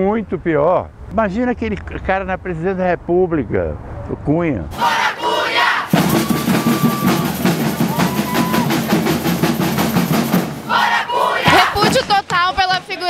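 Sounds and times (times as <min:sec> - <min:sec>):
crowd chanting and singing: 0:04.7 - 0:07.4, 0:10.6 - 0:12.2
protest drumming: 0:04.7 - 0:13.0.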